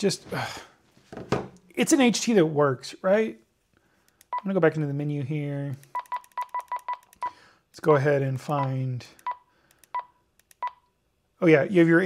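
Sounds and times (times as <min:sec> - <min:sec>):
short high keypad beeps: 0:06.0 - 0:07.3.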